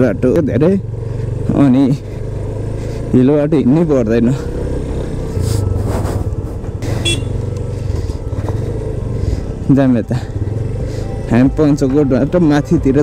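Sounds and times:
motorcycle engine running: 0.0s - 13.0s
tyres on gravel track: 0.0s - 13.0s.

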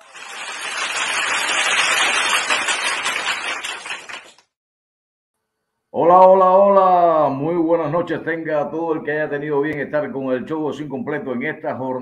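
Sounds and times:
crowd applause: 0.0s - 4.5s.

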